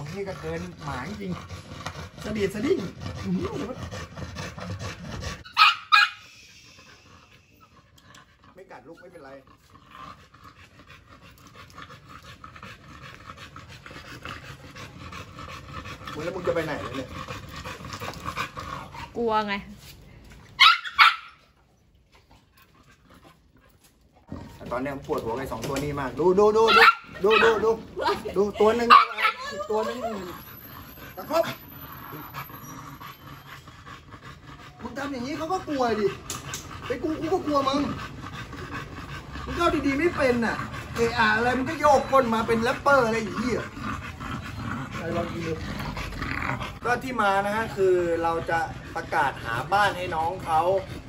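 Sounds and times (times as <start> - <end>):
dog panting: 0.0 - 20.0, 21.8 - 51.0.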